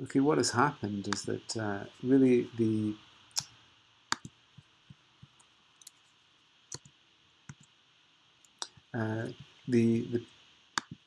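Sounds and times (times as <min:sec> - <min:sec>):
faint steady hiss: 0:00.0 - 0:11.0
computer clicks: 0:04.1 - 0:04.4, 0:10.8 - 0:11.0.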